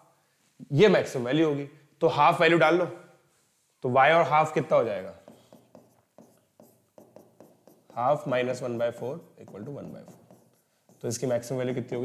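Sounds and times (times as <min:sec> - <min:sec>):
pen writing on a board: 0:04.9 - 0:11.6.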